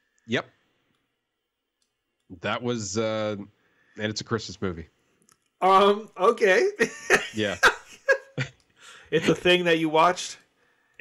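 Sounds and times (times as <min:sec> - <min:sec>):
faint clicks: 0:01.7 - 0:02.3.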